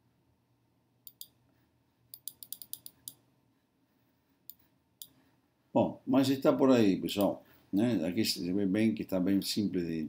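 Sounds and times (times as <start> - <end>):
computer mouse clicks: 1.0 - 1.4, 2.1 - 3.2.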